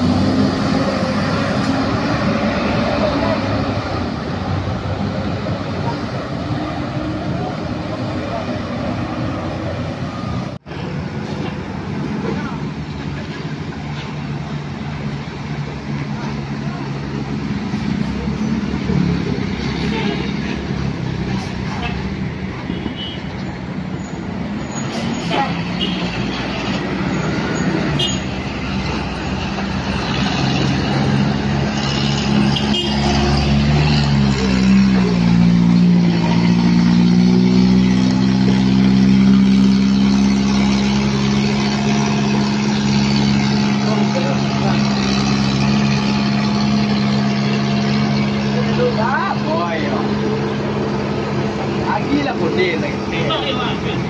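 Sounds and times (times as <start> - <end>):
bus diesel engine running: 0.0 - 22.8, 23.4 - 54.0
passing traffic: 0.0 - 54.0.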